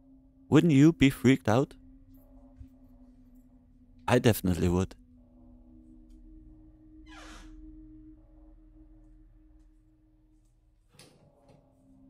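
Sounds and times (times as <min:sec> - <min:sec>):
low drone tones: 0:00.0 - 0:12.0.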